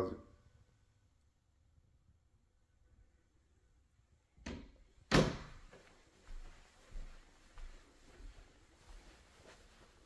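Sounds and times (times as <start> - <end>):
door banging shut: 4.4 - 5.6.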